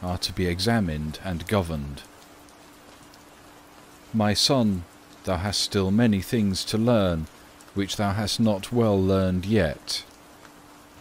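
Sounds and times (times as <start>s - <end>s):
faint rain-like hiss: 0.0s - 11.0s
faint steady hum: 0.0s - 11.0s.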